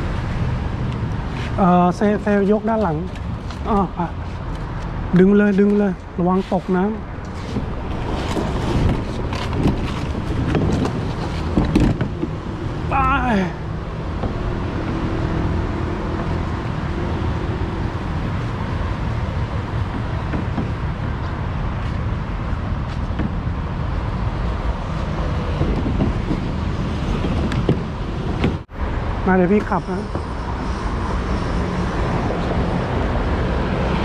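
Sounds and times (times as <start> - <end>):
road traffic noise: 0.0 - 34.0
man calling out: 12.9 - 13.6.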